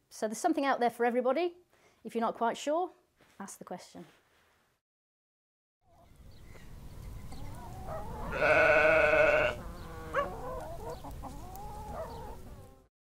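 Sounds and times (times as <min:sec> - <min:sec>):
sheep bleating: 0:08.3 - 0:10.3.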